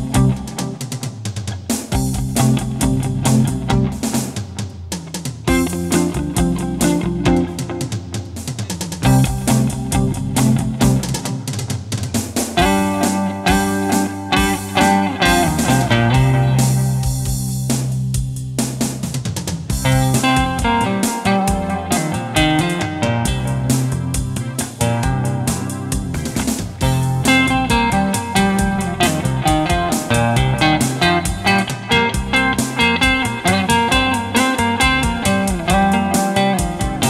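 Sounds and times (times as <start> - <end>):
electric guitar lead lines: 0.0 - 4.6, 5.5 - 11.5, 12.5 - 18.1, 19.7 - 37.0
backing track with drums: 0.0 - 37.0.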